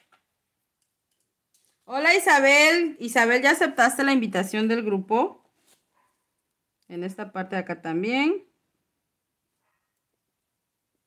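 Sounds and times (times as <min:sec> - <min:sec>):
woman speaking: 0:01.9 - 0:05.4, 0:06.9 - 0:08.6.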